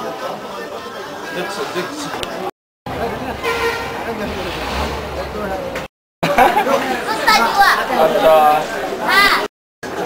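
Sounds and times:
people's voices: 0.0s - 10.0s
road traffic rumble: 2.9s - 5.9s
vehicle horn toot: 3.3s - 4.3s.

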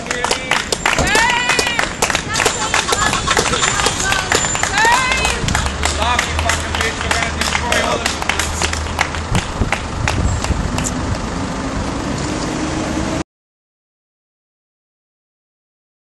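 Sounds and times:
faint crowd voices: 0.0s - 8.6s
scattered clicks and knocks: 0.1s - 11.0s.

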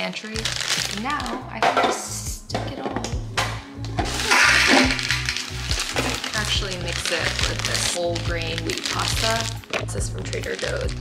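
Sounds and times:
dry spaghetti rattling into canister: 4.1s - 11.0s.

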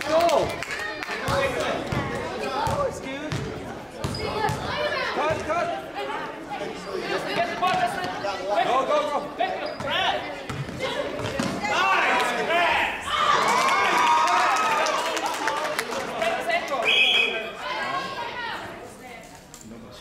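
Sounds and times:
basketball bouncing on gym floor: 1.3s - 5.5s, 10.5s - 11.6s.

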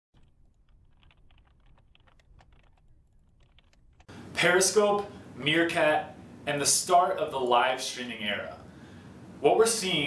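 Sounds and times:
rapid irregular clicking: 0.1s - 4.1s.

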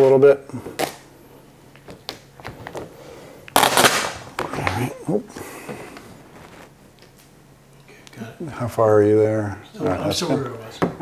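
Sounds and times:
vinyl film rustling: 1.7s - 2.9s, 3.5s - 7.3s.

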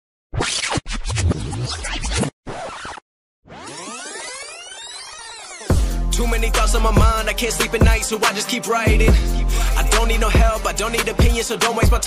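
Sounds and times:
record scratch: 0.4s - 5.7s
sweeping electronic effect: 3.5s - 6.4s.

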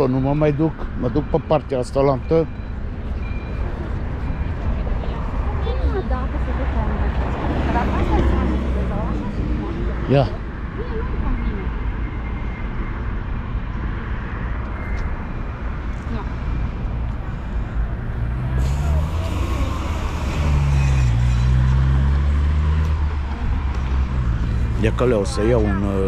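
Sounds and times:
traffic low rumble: 0.0s - 26.0s
motor vehicle passing: 4.8s - 10.4s, 15.9s - 26.0s.

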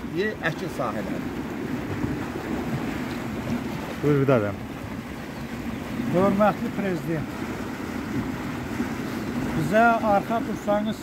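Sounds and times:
water rushing through canal: 0.0s - 11.0s.

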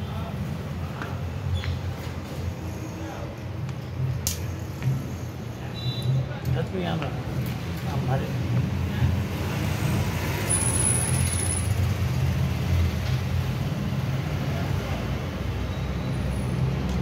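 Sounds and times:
vehicle engines rumbling: 0.0s - 17.0s.

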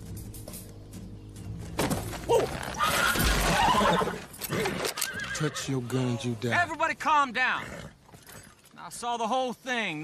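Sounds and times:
horse whinnying: 2.3s - 6.2s.

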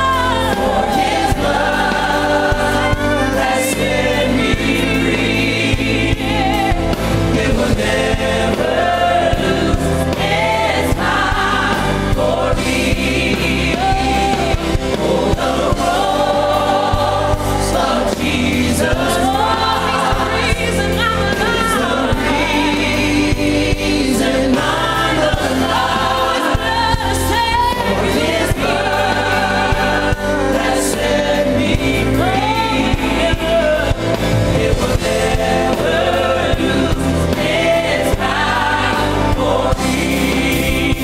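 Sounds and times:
band with steady bass: 0.0s - 41.0s
gospel choir singing: 0.0s - 41.0s.

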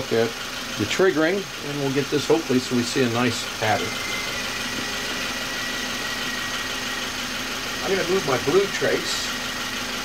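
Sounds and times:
car engine idling: 0.0s - 10.0s
fuel injectors ticking: 0.0s - 10.0s.

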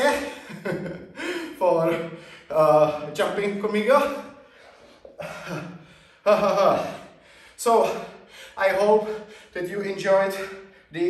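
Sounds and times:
man gasping for breath: 4.4s - 8.6s.

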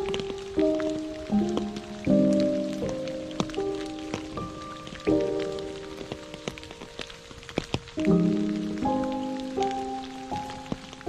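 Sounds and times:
rain falling on water: 0.0s - 11.0s
raindrop ticks: 0.0s - 11.0s
slow soft background music: 0.0s - 11.0s.

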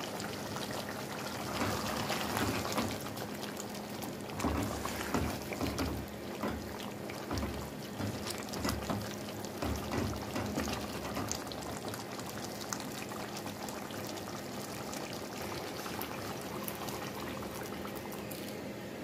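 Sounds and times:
ladle stirring with soft bumps: 0.0s - 18.6s
stew bubbling in a pot: 0.0s - 19.0s.

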